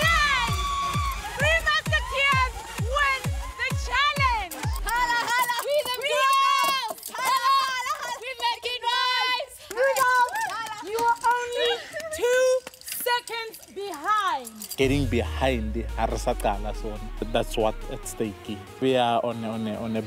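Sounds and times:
people shouting excitedly: 0.0 - 12.6.

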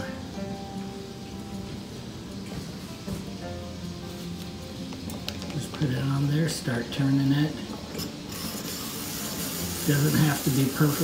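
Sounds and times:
hand-cranked apple peeler running: 7.9 - 11.0.

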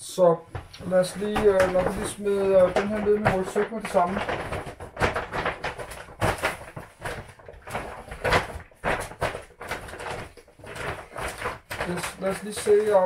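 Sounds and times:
plastic bag rustling: 0.5 - 13.0.

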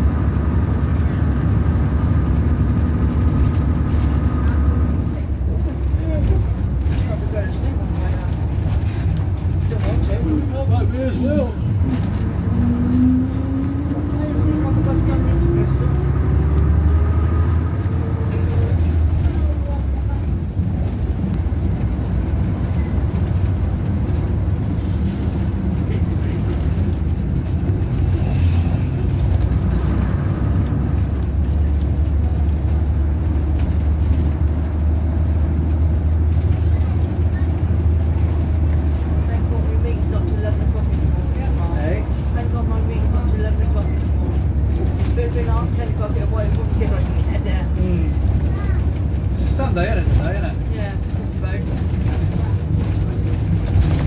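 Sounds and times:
bus engine droning: 0.0 - 54.0
road noise: 0.0 - 54.0.

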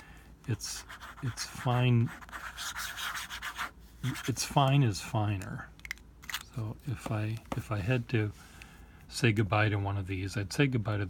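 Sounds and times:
fountain pen scratching paper: 0.8 - 4.3.

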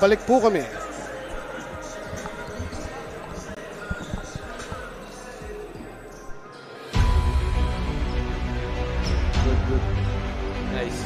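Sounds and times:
distant voices: 0.6 - 6.6.

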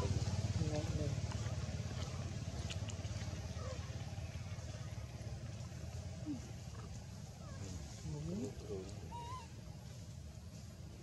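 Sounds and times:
baby monkey cooing: 9.1 - 9.6.

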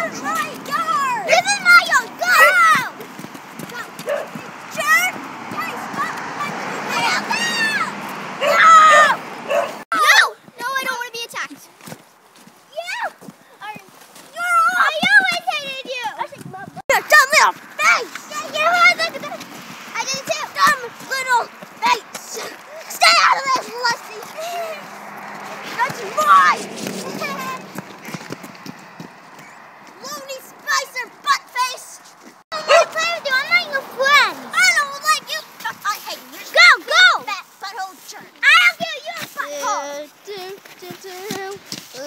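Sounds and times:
child calling out: 0.0 - 3.0, 4.8 - 9.2, 22.4 - 24.9, 25.8 - 27.7, 32.6 - 37.3
footsteps of boots on wet pavement: 0.0 - 7.3, 10.4 - 33.8, 34.8 - 36.5, 37.4 - 42.0
girls' high-pitched cries and squeals: 0.0 - 11.4, 12.7 - 28.4, 29.4 - 42.0.

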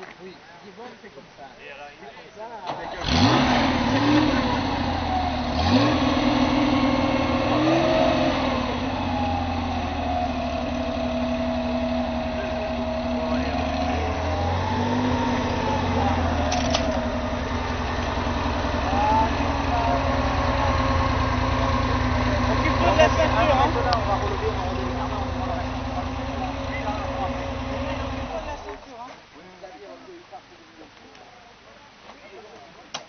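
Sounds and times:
car engine idling with throttle blips: 2.9 - 28.8.

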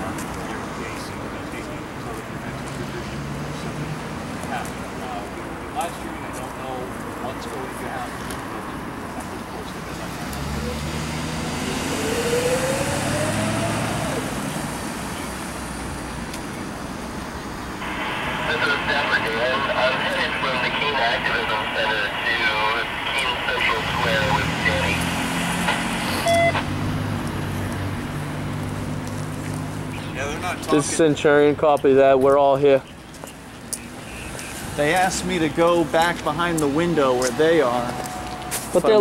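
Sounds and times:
motor vehicle running: 0.0 - 39.0
radio transmission of voices: 17.8 - 26.7, 29.9 - 39.0.

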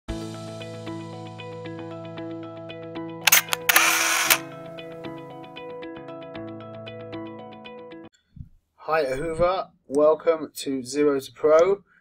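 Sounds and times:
camera shutter clicks: 3.3 - 4.6.

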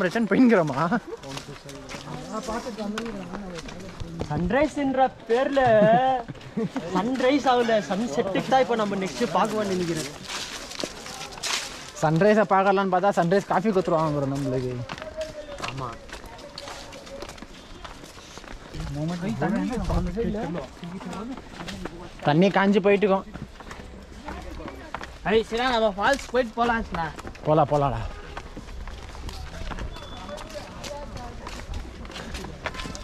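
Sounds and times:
footsteps on dry leaves: 0.0 - 5.2, 7.0 - 33.0
faint voices: 14.0 - 22.3.

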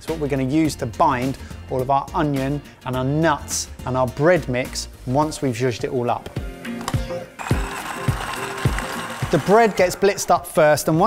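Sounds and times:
background music with steady beat: 0.0 - 11.0
food processor motor running: 7.4 - 10.2.

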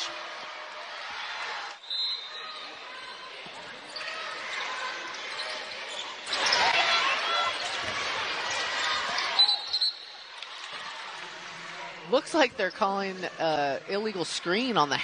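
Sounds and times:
arena crowd noise: 0.0 - 15.0
sneakers squeaking on court: 3.4 - 6.8.

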